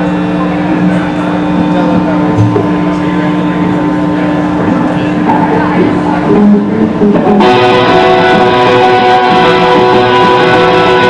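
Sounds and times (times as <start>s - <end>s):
amplifier hum: 0.0s - 11.0s
crowd chatter: 0.0s - 11.0s.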